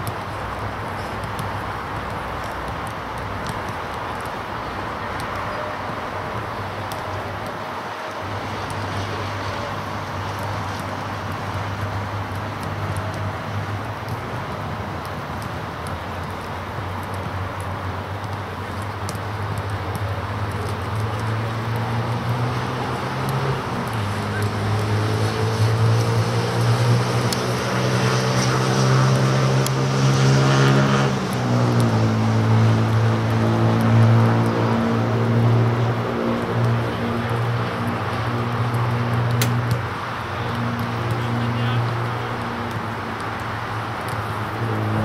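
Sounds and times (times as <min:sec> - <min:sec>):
outdoor background noise: 0:00.0 - 0:45.0.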